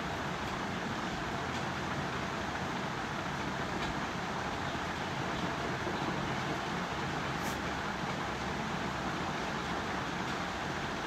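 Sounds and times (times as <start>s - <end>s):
constant hiss and hum: 0.0s - 11.0s.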